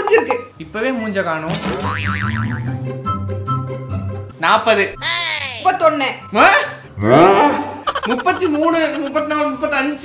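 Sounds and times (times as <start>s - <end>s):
cartoon boing: 1.8s - 2.7s.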